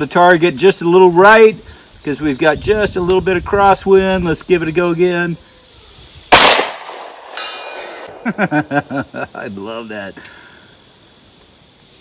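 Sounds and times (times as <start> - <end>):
pistol shot echo: 6.3 - 8.2
man laughing: 8.0 - 9.6.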